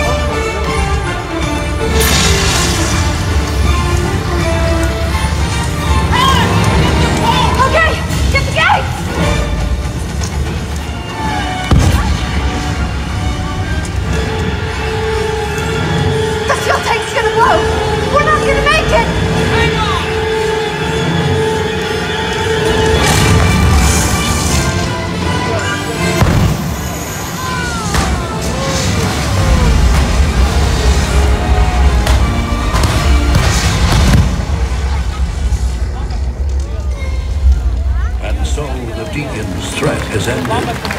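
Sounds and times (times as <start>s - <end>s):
music: 0.0s - 40.9s
pyrotechnic explosion: 1.8s - 5.6s, 11.6s - 13.2s, 22.7s - 24.9s, 26.0s - 36.7s.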